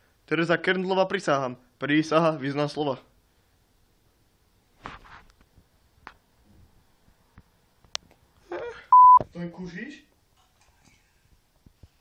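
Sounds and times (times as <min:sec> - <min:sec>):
short electronic beep: 0:08.9 - 0:09.2.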